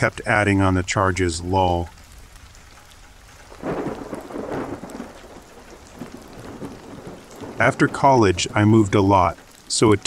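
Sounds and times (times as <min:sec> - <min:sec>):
steady rain: 0:00.0 - 0:10.0
thunder rumbling: 0:03.2 - 0:10.0.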